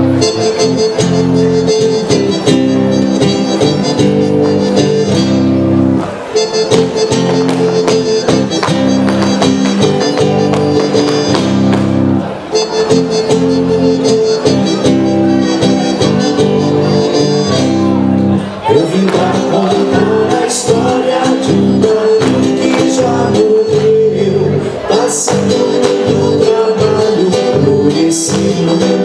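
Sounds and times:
accordion chords: 0:00.0 - 0:29.0
strummed guitar: 0:00.0 - 0:29.0.

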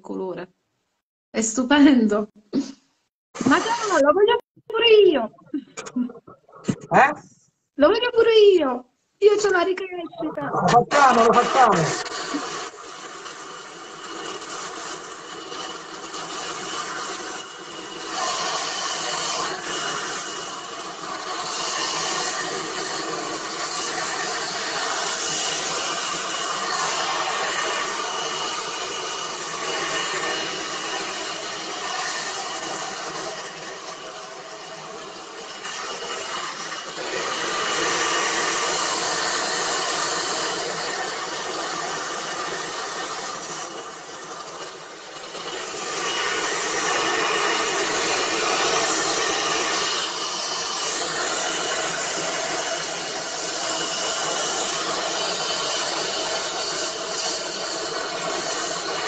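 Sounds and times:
hair dryer blowing: 0:03.4 - 0:04.4, 0:10.5 - 0:59.0.

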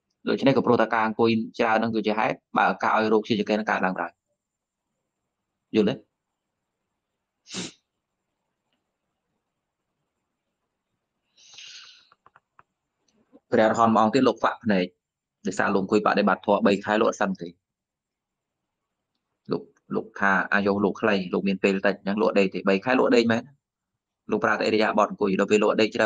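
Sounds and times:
person speaking: 0:00.3 - 0:04.1, 0:05.8 - 0:06.0, 0:07.5 - 0:07.7, 0:11.6 - 0:11.9, 0:13.4 - 0:14.9, 0:15.5 - 0:17.5, 0:19.5 - 0:23.4, 0:24.3 - 0:26.0
breathy puff from a person: 0:07.5 - 0:07.8, 0:11.4 - 0:12.1.

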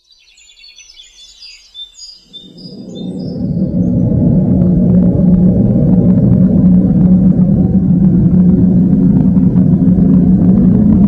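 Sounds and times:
birds chirping and twittering: 0:00.0 - 0:04.2
low rumbling musical drone: 0:02.3 - 0:11.0.

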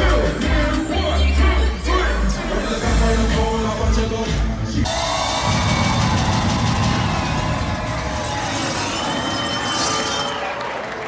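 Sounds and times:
dance music: 0:00.0 - 0:10.5
crowd: 0:00.0 - 0:11.0.

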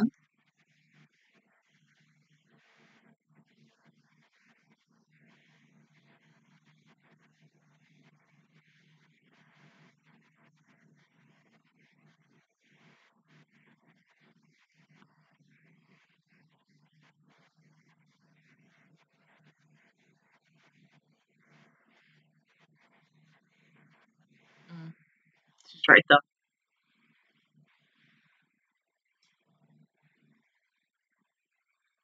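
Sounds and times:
woman saying yeah: 0:25.8 - 0:26.2.

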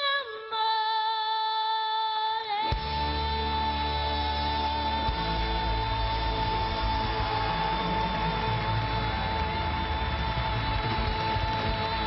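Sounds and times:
pop band playing: 0:02.6 - 0:12.0
singer holding long high note: 0:02.7 - 0:12.0.

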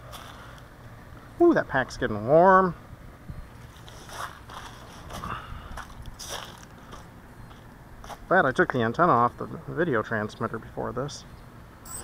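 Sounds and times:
scuffs and rustles of handling: 0:03.6 - 0:07.1.

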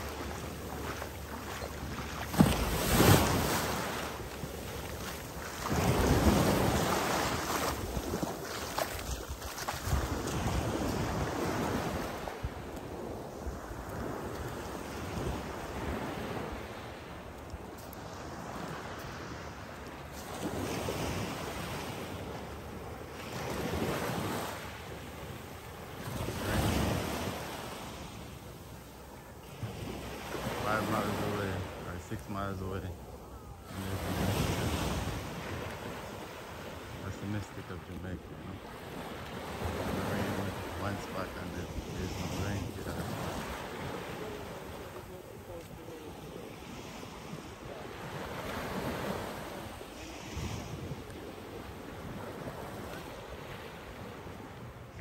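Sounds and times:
surf washing onto beach: 0:00.0 - 0:33.0, 0:33.6 - 0:55.0.

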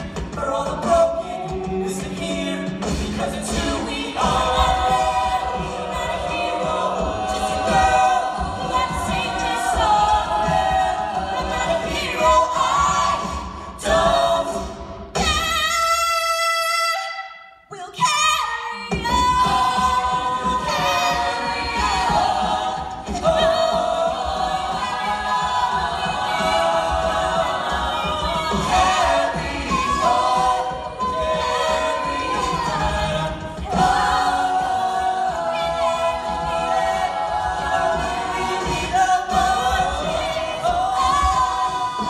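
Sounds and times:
vocal percussion beat: 0:00.0 - 0:16.5, 0:17.8 - 0:42.0
a cappella group singing: 0:00.0 - 0:42.0.

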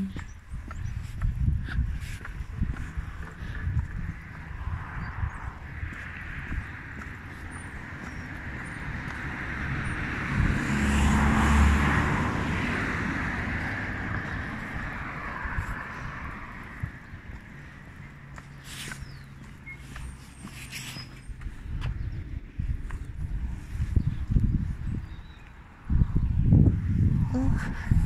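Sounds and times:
vehicle passing: 0:02.0 - 0:28.0.

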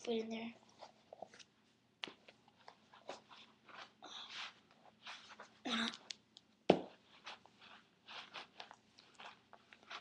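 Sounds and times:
scuffing and rustling of a shoe: 0:06.7 - 0:10.0.

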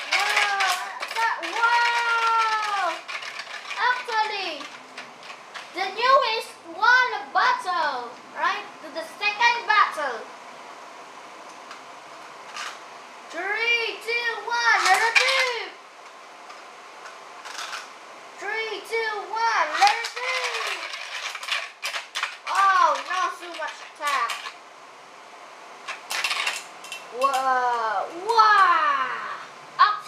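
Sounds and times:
spinning tops clattering: 0:00.0 - 0:06.4, 0:12.5 - 0:12.8, 0:14.1 - 0:15.8, 0:17.0 - 0:17.9, 0:19.0 - 0:24.6, 0:25.8 - 0:28.4
child's wordless vocal sounds: 0:27.2 - 0:30.0.

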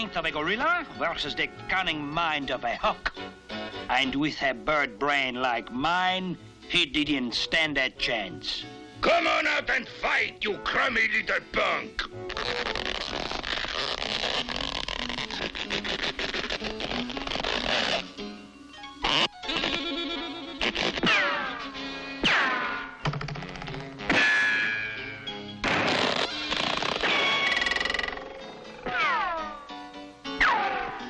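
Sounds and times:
cartoon music: 0:18.8 - 0:22.4, 0:26.2 - 0:31.0
sharp comedy hits: 0:21.0 - 0:29.5, 0:30.4 - 0:31.0.

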